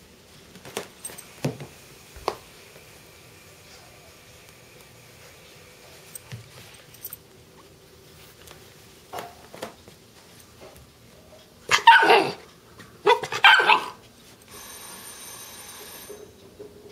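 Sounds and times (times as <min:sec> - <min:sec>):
puppy barking: 0:11.7 - 0:12.4, 0:13.0 - 0:14.0.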